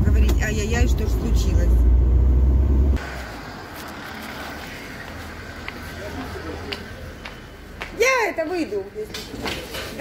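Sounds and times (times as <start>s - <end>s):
car rumble from inside cabin: 0.0s - 3.0s.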